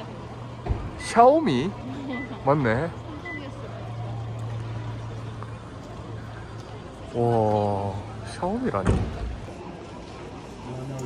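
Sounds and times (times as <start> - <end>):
background city noise: 0.0 - 11.0.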